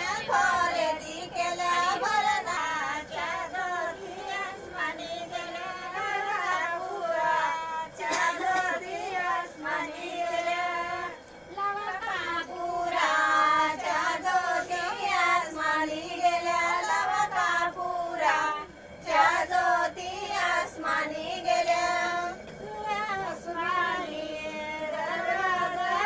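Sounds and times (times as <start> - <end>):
women singing folk song: 0.0 - 26.0.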